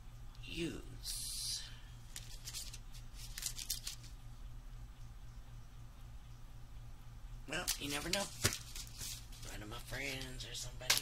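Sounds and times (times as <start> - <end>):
plastic packages crackling: 2.1 - 4.1, 7.6 - 11.0.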